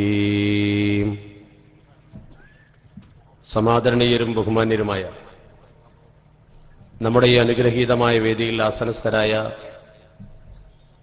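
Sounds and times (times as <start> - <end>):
man chanting recitation: 0.0 - 2.0, 3.4 - 5.4, 7.0 - 10.0
faint low background noise: 0.0 - 11.0
faint knocks: 2.1 - 3.3.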